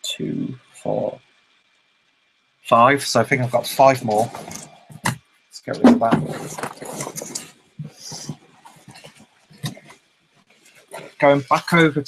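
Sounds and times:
cardboard rustle: 0:05.8 - 0:09.9.

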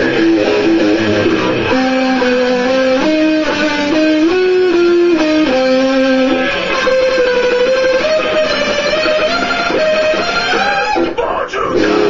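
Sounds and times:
electric guitar chords: 0:00.0 - 0:11.2, 0:11.8 - 0:12.0.

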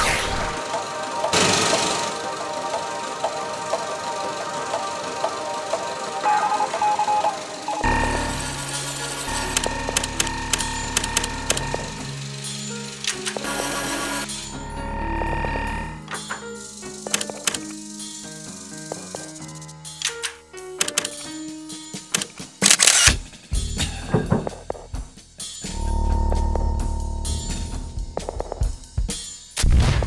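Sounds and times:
low synth drone: 0:00.0 - 0:16.1, 0:25.7 - 0:28.4
music with low bass notes: 0:07.8 - 0:16.4, 0:23.5 - 0:30.0
sharp mechanical clicks: 0:09.2 - 0:12.0, 0:13.0 - 0:13.6, 0:17.0 - 0:17.8, 0:20.0 - 0:21.3, 0:22.1 - 0:23.2
camera shutter clicks: 0:22.2 - 0:23.2.

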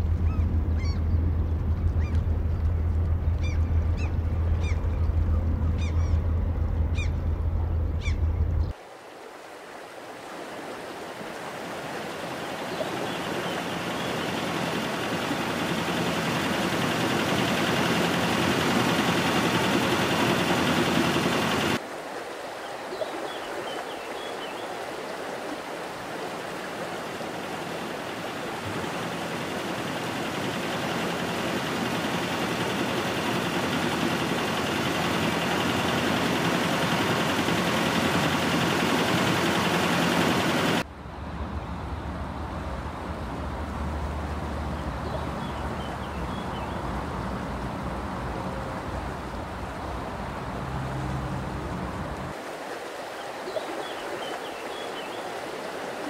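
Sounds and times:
river water rushing: 0:08.7 - 0:56.0.

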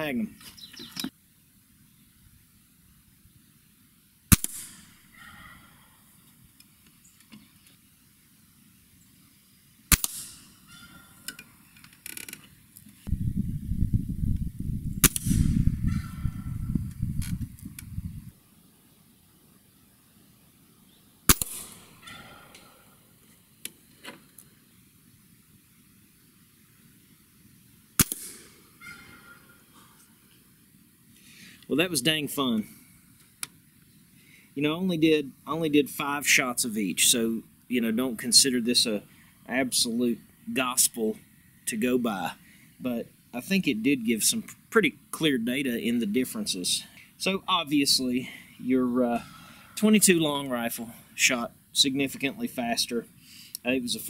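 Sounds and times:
air rifle shots cracking: 0:04.3 - 0:04.9, 0:09.9 - 0:10.5, 0:15.0 - 0:16.6, 0:21.3 - 0:22.4, 0:28.0 - 0:28.8
low rumble: 0:13.1 - 0:18.3.

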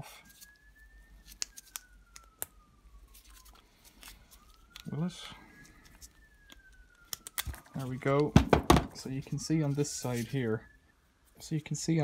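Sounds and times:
distant siren wailing: 0:00.0 - 0:12.0.

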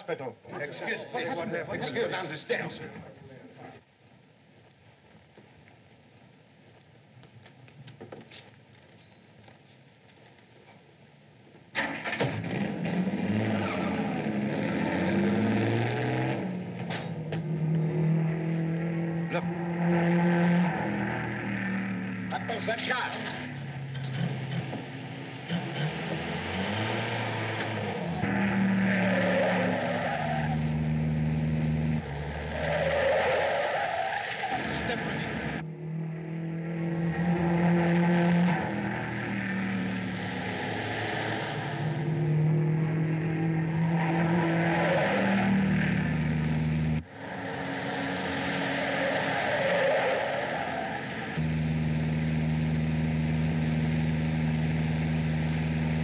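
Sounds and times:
car engines running hard: 0:11.8 - 0:56.0
tyres squealing: 0:25.4 - 0:35.6, 0:47.2 - 0:51.4.

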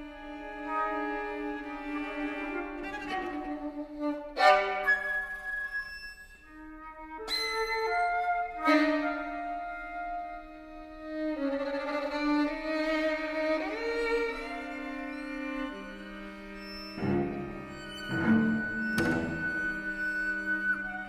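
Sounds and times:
chamber music for flute and strings: 0:00.0 - 0:21.0.

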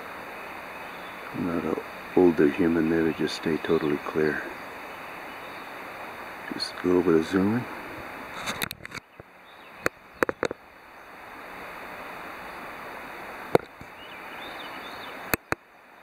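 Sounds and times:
faint outdoor hiss: 0:00.0 - 0:16.0
camera handling clicks and taps: 0:09.8 - 0:10.6.

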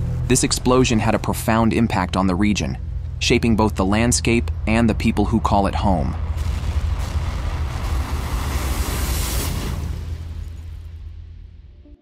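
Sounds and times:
deep volcanic rumble: 0:00.0 - 0:11.8
hissing roar: 0:06.1 - 0:10.5.

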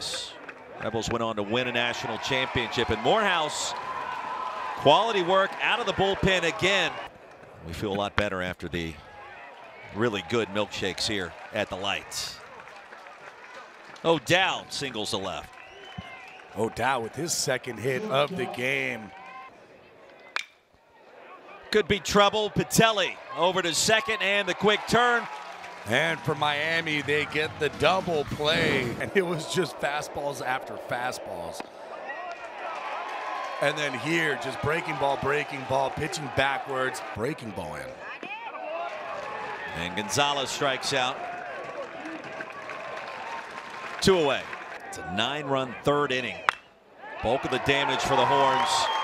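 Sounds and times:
faint ballpark background: 0:00.0 - 0:49.0
crowd murmur: 0:17.7 - 0:18.8.

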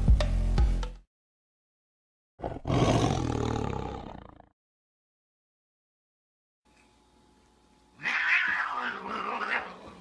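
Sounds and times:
big cat roaring: 0:02.4 - 0:04.5, 0:08.0 - 0:10.0.

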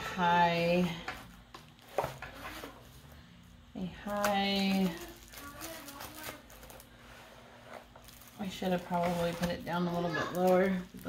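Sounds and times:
plastic bag rustling: 0:00.9 - 0:03.2, 0:03.8 - 0:11.0.

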